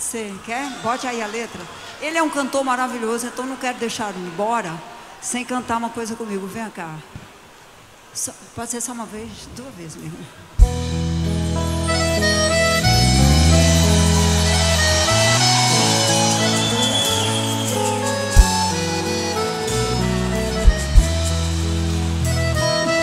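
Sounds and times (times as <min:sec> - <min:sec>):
live band with accordion: 0:10.6 - 0:23.0.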